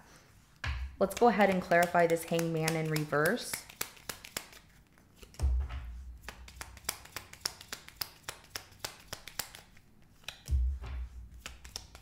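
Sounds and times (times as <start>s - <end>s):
cards shuffling: 1.0s - 5.5s, 6.2s - 12.0s.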